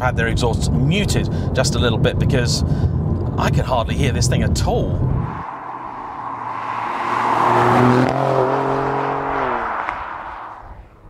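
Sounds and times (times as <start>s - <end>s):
road noise: 0.0s - 11.0s
car driving past: 5.0s - 10.9s.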